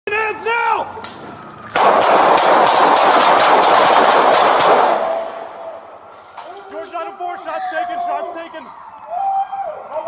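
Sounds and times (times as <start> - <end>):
rapid gunfire volley: 1.8 - 5.2.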